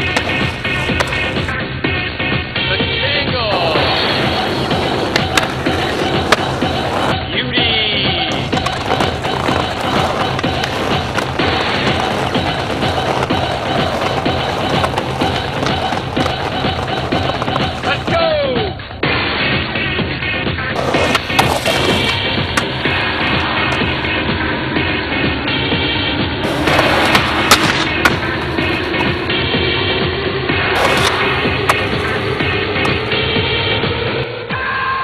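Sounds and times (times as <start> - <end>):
skateboard clacks: 0.0 - 1.6, 2.8 - 19.0, 20.6 - 24.2, 26.4 - 34.2
background music: 0.0 - 35.0
skateboard wheels rolling: 0.0 - 35.0.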